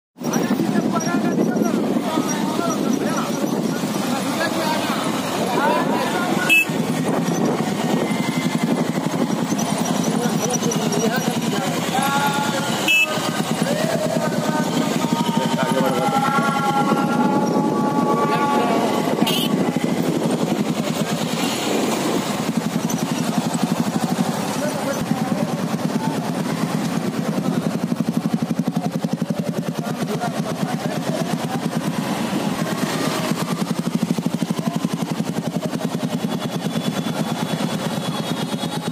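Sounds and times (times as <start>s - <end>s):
motorcycle engines droning: 0.2s - 38.9s
voices calling: 0.2s - 38.9s.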